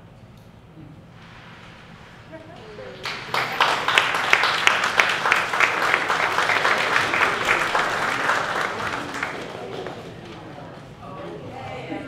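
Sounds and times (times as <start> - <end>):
audience applauding: 2.6 - 10.6.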